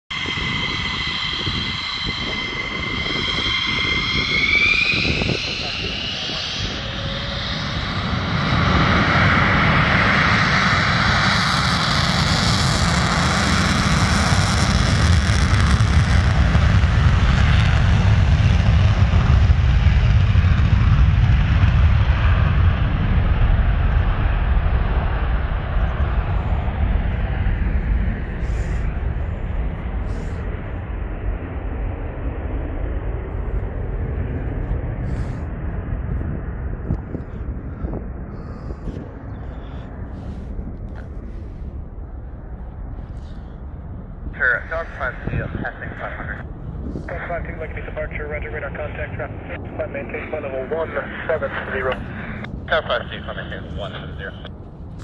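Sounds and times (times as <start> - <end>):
jet turbine whine: 0.1 - 55.0
loud jet roar: 0.1 - 55.0.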